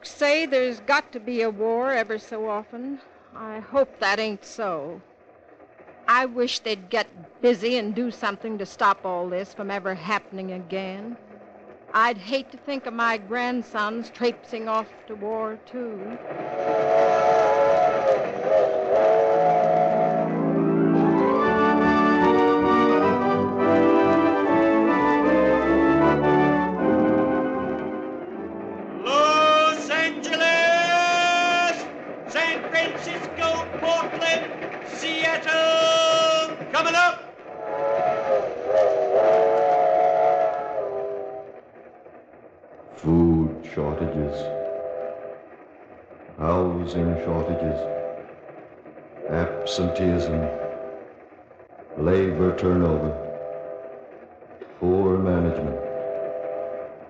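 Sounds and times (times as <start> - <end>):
train rumble: 0.0 - 57.0
steam locomotive whistle: 16.0 - 41.7, 43.0 - 45.5, 46.4 - 48.3, 49.2 - 51.2, 52.0 - 57.0
organ music: 16.4 - 38.2, 43.0 - 45.1, 46.4 - 48.3, 49.2 - 51.0, 52.0 - 53.8.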